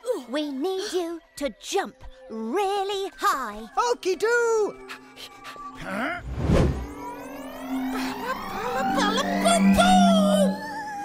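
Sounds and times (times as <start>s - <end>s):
background music: 0.0s - 11.0s
rising pitch glide: 6.2s - 10.8s.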